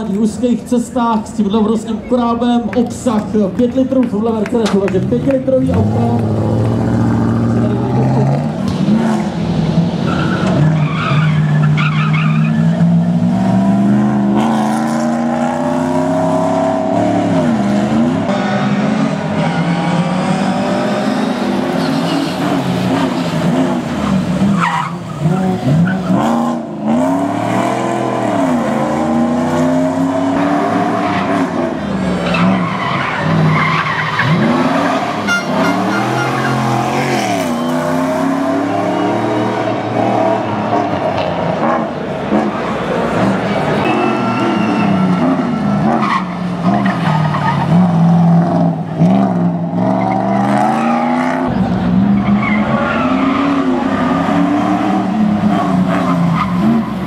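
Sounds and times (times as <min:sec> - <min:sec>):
car engine revving hard: 0:05.7 - 0:57.0
tyres squealing: 0:32.2 - 0:39.6.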